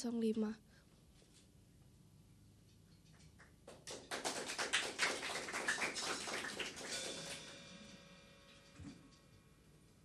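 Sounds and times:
audience applause: 3.7s - 7.6s.

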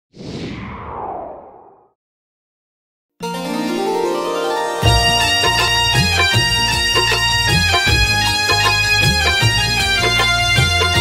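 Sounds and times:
whoosh falling in pitch: 0.1s - 2.0s.

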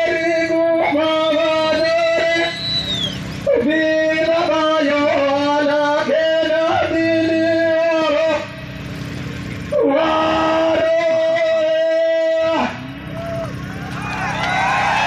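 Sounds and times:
man singing into a microphone: 0.0s - 2.6s, 3.4s - 8.6s, 9.7s - 12.8s.

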